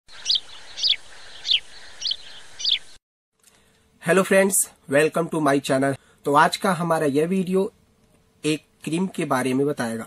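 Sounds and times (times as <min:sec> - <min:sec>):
bird chirping: 0:00.1 - 0:03.0.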